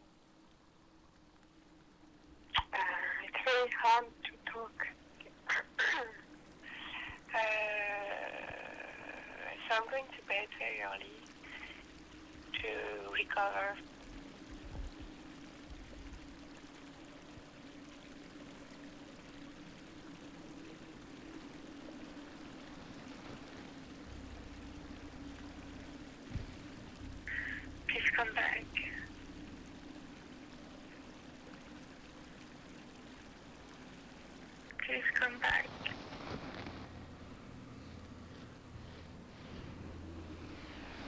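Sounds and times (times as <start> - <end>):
faint hiss: 0.0 - 41.0
steady low hum: 0.0 - 41.0
voice: 2.6 - 11.8, 12.6 - 13.8, 27.3 - 29.1, 34.7 - 36.0.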